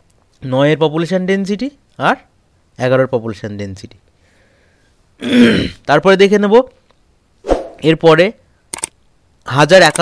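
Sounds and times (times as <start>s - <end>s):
person clearing throat: 5.2s - 5.8s.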